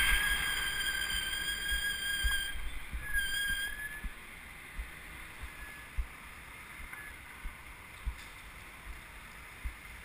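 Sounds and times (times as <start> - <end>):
bicycle brakes squealing: 0.0 - 4.2, 5.5 - 6.0
low rumble of wind and road: 0.0 - 10.0.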